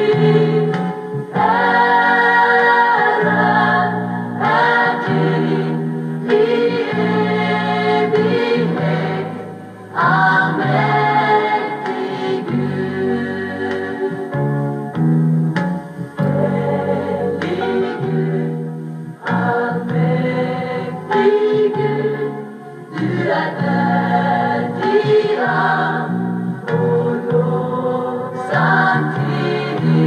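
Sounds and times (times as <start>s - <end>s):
vocal group singing: 0.0s - 14.6s, 16.1s - 30.0s.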